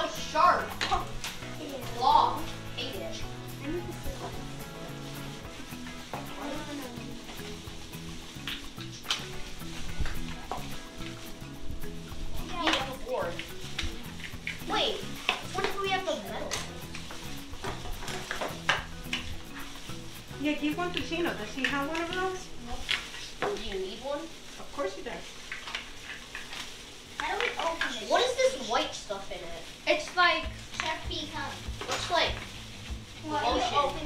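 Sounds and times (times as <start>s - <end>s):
children's voices: 0.0s - 4.4s, 33.2s - 34.0s
background music: 0.0s - 24.4s, 29.9s - 34.0s
plastic gloves crinkling: 0.0s - 34.0s
lobster shells cracking: 25.5s - 27.9s.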